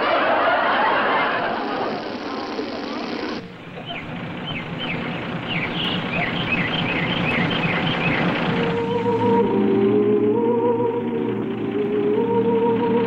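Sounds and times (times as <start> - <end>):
high downward-sliding bird chirps: 0.0 - 9.4
steady background hiss: 0.0 - 13.0.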